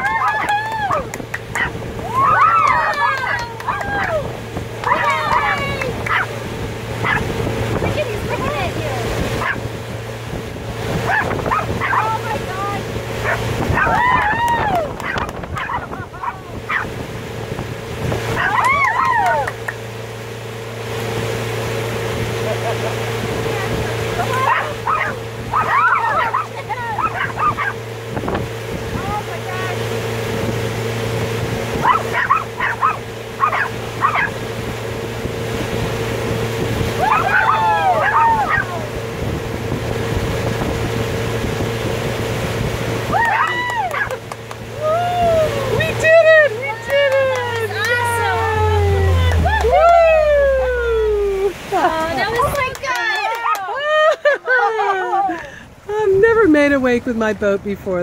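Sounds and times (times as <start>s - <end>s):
boat wake rushing: 0.0s - 58.0s
motorboat engine hum: 0.0s - 58.0s
small dog barking and yipping: 1.5s - 6.4s, 7.0s - 7.3s, 9.4s - 9.7s, 11.0s - 12.2s, 13.2s - 16.9s, 18.4s - 19.5s, 24.3s - 27.8s, 31.8s - 34.4s, 37.0s - 38.8s, 43.2s - 44.2s.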